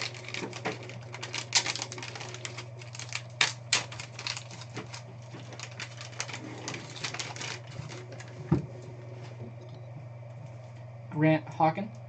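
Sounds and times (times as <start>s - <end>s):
foil wrapper crinkling: 0.0s - 8.9s
low hum: 0.0s - 12.0s.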